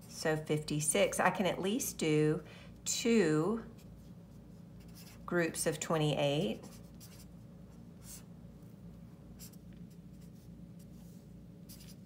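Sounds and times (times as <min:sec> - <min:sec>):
low steady hum: 0:00.0 - 0:12.0
marker writing on paper: 0:03.8 - 0:05.3, 0:06.6 - 0:07.4, 0:09.4 - 0:12.0.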